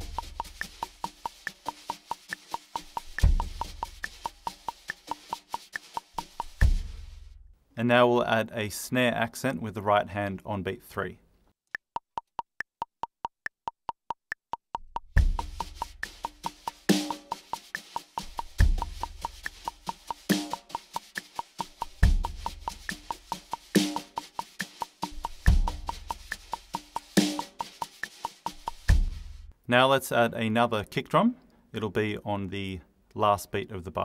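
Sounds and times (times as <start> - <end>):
kick drum: 0.0 - 1.2, 3.0 - 4.6, 6.3 - 7.1, 14.7 - 17.5, 18.2 - 20.7, 21.6 - 24.1, 25.1 - 27.5, 28.5 - 29.4
metronome clicking: 0.0 - 6.6, 11.7 - 28.9
wire brushes on snare drum: 0.0 - 7.4, 15.2 - 29.5.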